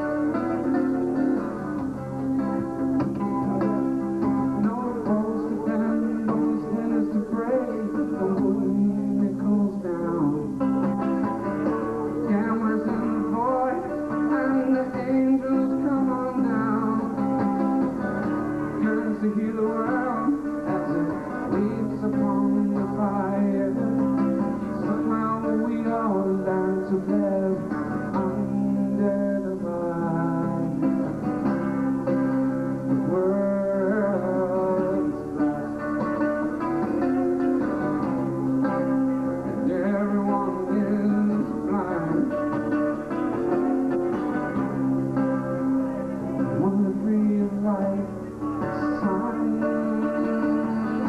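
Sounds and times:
acoustic guitar strumming: 0.0s - 51.0s
man singing: 2.4s - 11.0s, 12.1s - 18.0s, 18.6s - 36.0s, 37.6s - 43.8s, 45.6s - 51.0s.

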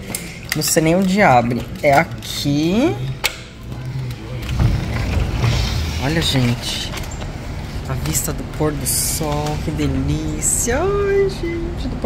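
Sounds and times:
sliding glass door rumbling open: 3.5s - 10.6s.

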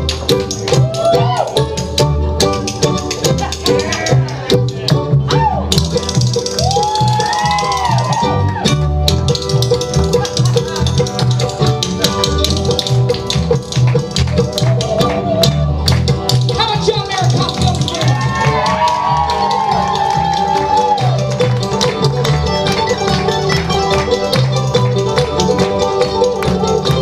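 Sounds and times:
roots band playing: 0.0s - 27.0s
harmonica lead bending pitch: 5.3s - 27.0s.

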